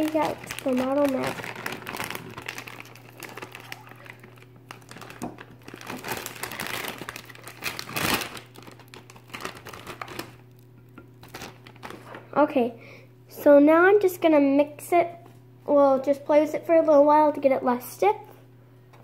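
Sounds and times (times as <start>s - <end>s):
plastic pouch crinkling: 0.0s - 12.2s.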